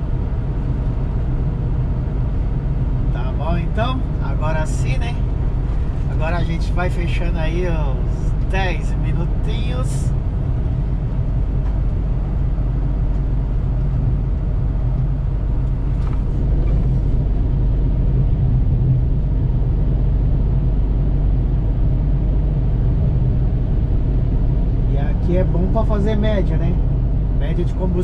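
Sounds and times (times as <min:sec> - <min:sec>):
truck diesel engine drone: 0:00.0 - 0:28.0.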